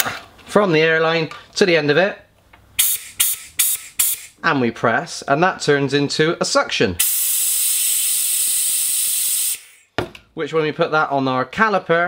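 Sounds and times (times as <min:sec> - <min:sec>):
compressed air hissing: 0:02.8 - 0:04.4, 0:07.0 - 0:09.9.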